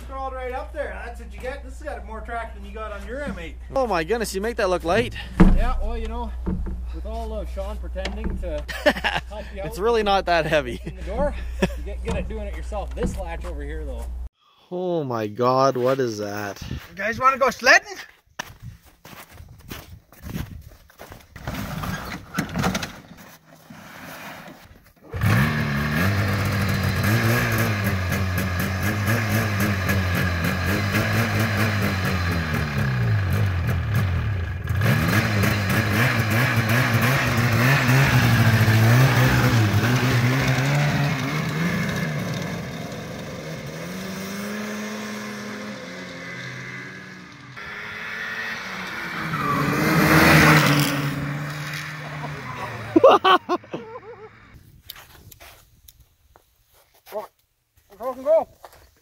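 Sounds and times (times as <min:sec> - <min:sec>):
snowmobile engine starting knocks: 0:05.0 - 0:07.0
snowmobile engine idling and revving: 0:06.8 - 0:14.3, 0:25.1 - 0:54.6
snowmobile passing by: 0:25.2 - 0:54.6.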